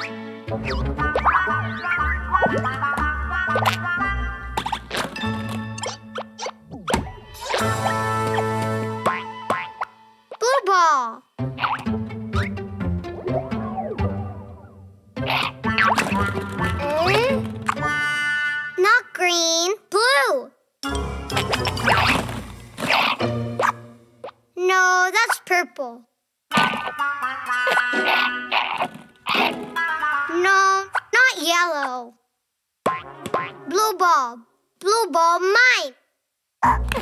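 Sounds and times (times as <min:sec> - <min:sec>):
cartoon music with held chord: 0:00.0 - 0:10.3, 0:11.2 - 0:18.9, 0:20.8 - 0:24.2, 0:26.8 - 0:28.5, 0:29.5 - 0:30.9
cartoon baby voice babbling: 0:26.5 - 0:28.8, 0:29.7 - 0:32.1
wavering falling cartoon vocal cry: 0:26.6 - 0:28.8.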